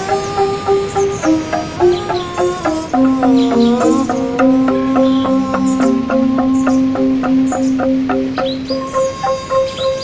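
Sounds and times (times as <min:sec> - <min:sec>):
angklung playing a melody: 0:00.0 - 0:10.0.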